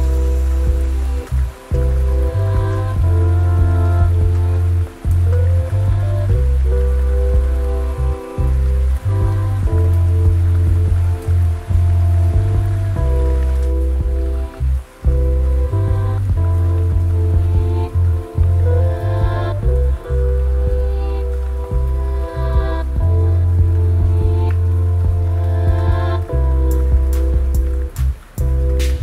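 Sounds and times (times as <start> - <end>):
heavy bass line: 0.0 - 29.0
lofi hip hop music: 0.0 - 29.0
mellow keyboard chords: 0.0 - 29.0
rain: 0.0 - 29.0.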